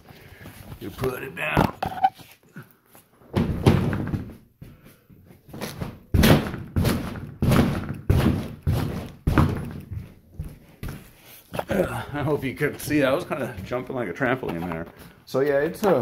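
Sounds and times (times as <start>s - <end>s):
heavy thuds of jumping: 5.6s - 9.8s.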